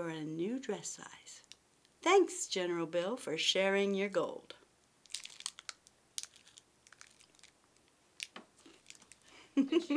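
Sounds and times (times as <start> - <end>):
foil wrapper crinkling: 5.0 - 9.3.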